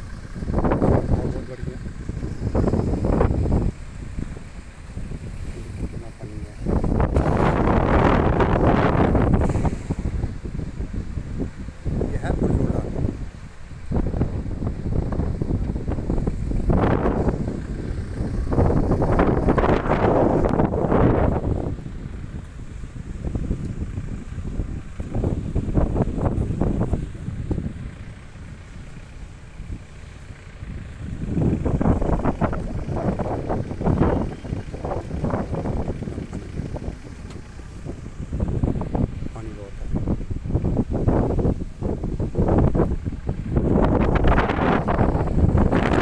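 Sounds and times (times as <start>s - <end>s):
wind buffeting microphone: 0.0s - 46.0s.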